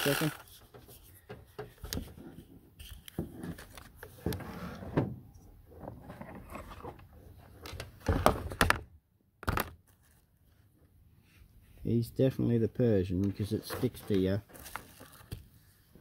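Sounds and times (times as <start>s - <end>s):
handling rustle: 13.3s - 16.0s.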